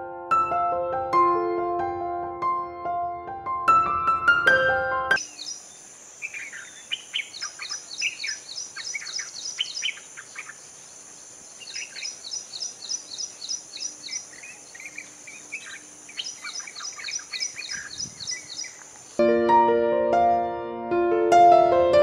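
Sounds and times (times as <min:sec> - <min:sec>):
bird babbling song: 0:05.2 - 0:19.2.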